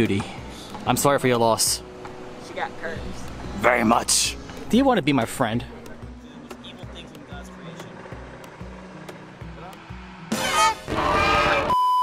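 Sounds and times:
background music with bass line: 0.0 - 11.7
high-pitched test-tone beep: 11.6 - 12.0.

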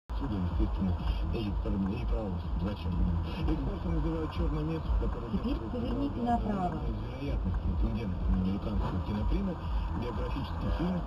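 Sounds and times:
low rumble: 0.1 - 11.0
person speaking: 0.9 - 11.0.

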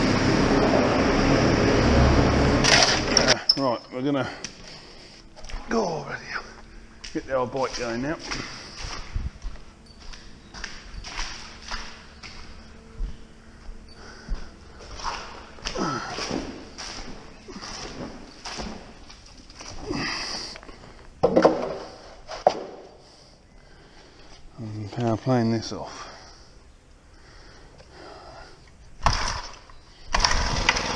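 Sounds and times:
breathing: 4.2 - 5.3, 13.4 - 15.0, 19.9 - 22.3, 22.9 - 24.5, 25.8 - 28.7
knocks and handling noises: 21.2 - 22.9.

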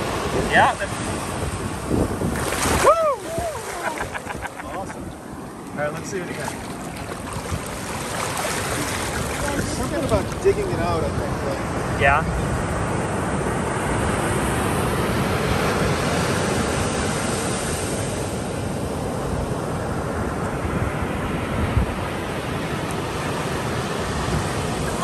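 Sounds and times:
surf washing over sand: 0.0 - 25.0.

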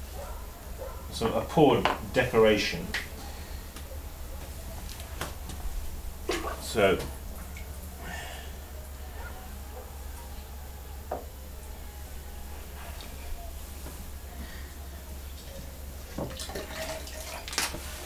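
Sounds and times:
low steady hum: 0.0 - 18.0
glaze trickling into bucket: 15.4 - 18.0.

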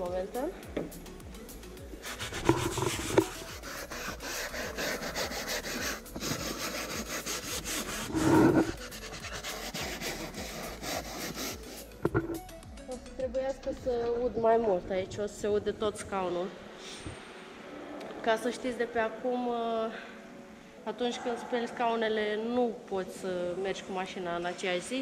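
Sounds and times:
brush scrubbing fabric seat: 2.0 - 12.3.

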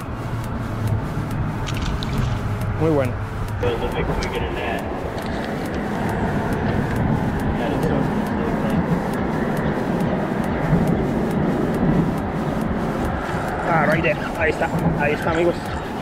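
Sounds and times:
road traffic rumble on bridge: 0.0 - 16.0
man talking: 2.8 - 5.0, 7.6 - 8.9, 13.6 - 15.8.

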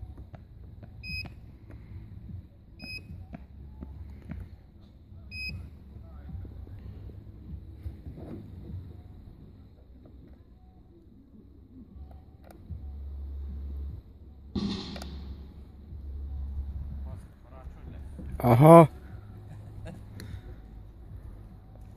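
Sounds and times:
low rumbling noise: 12.7 - 21.8.

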